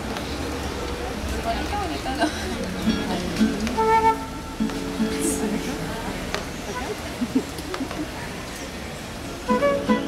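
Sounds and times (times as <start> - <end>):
acoustic guitar: 2.3 - 7.4, 9.4 - 10.0
flute playing held notes: 3.7 - 4.6, 9.5 - 10.0.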